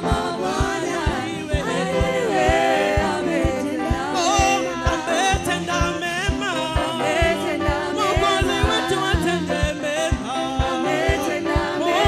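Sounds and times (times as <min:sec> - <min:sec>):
woman lead singer: 0:00.0 - 0:05.5
band playing: 0:00.0 - 0:12.0
choir singing: 0:00.0 - 0:12.0
steady kick drum beat: 0:00.0 - 0:12.0.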